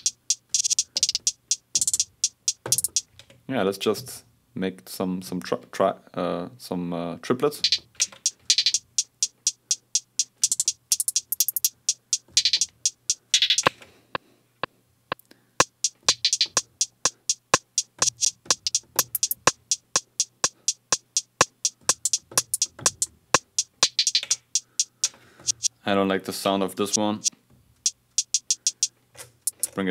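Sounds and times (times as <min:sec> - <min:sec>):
drum machine hi-hat pattern: 0:00.0 - 0:03.1, 0:07.6 - 0:13.8, 0:15.6 - 0:25.8, 0:26.9 - 0:29.8.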